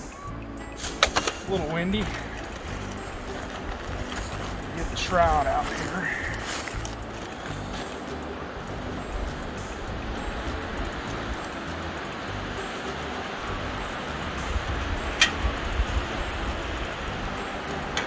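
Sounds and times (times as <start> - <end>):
steady hiss: 0.6 - 18.0
wind buffeting microphone: 1.0 - 17.9.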